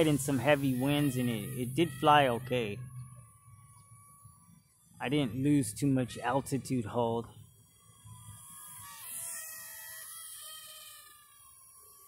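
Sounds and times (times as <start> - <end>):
toy quadcopter motors whining: 0.0 - 12.0.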